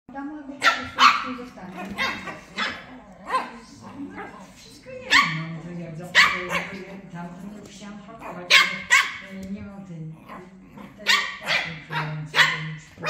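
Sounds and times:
puppies barking: 0.6s - 5.5s, 6.1s - 7.0s, 8.2s - 9.4s, 10.9s - 13.0s.

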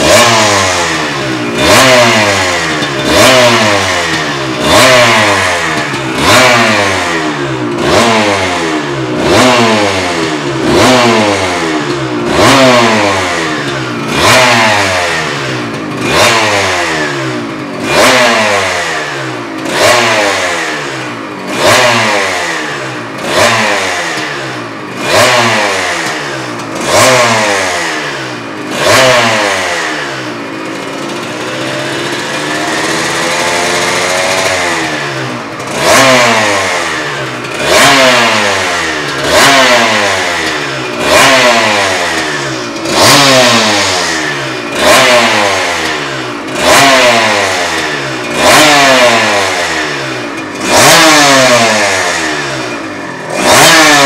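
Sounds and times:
motorcycle engine throttle blips: 0.0s - 54.0s.

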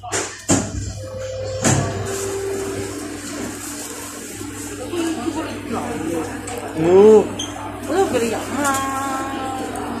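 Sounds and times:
train motors whining: 1.0s - 6.6s.

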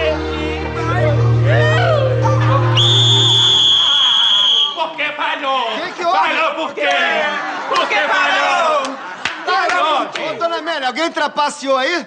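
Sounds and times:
music: 0.0s - 3.9s
shrill whistle blast: 2.6s - 4.8s.

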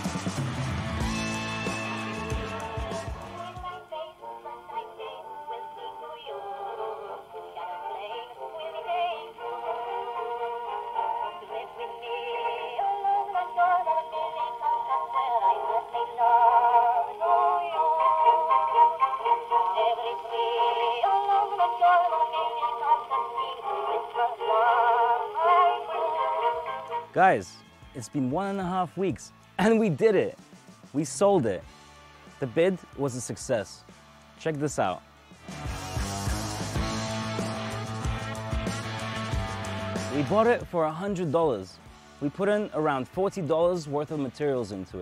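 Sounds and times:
gramophone record singer with vibrato: 0.0s - 30.3s.

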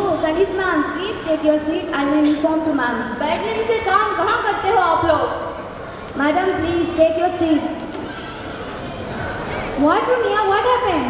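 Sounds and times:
woman speaking over microphone: 0.0s - 5.5s, 6.2s - 7.8s, 9.8s - 11.0s.

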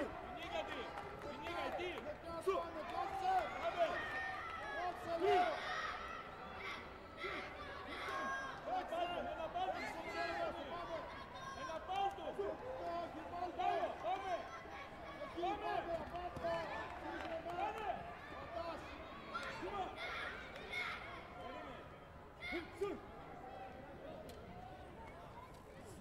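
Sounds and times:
people calling and talking: 0.0s - 26.0s.

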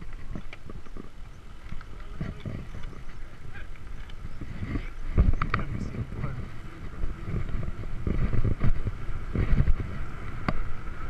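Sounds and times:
bike clicks and rattles: 0.0s - 11.0s
bike rolling rumble: 0.0s - 11.0s.

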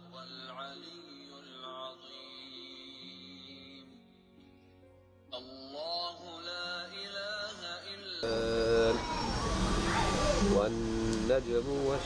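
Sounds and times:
man chanting recitation: 5.4s - 9.4s, 10.4s - 12.0s.

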